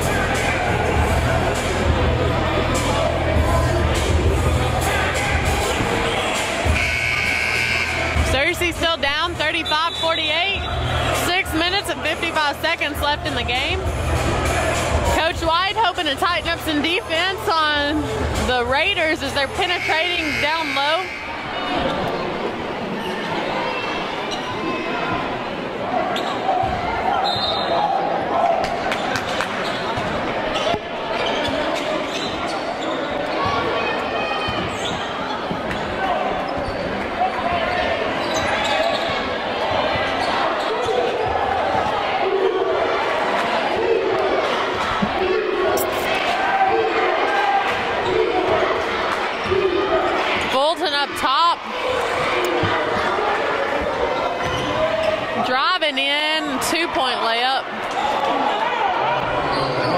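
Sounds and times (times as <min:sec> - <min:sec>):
crowd voices: 0:00.0 - 0:59.9.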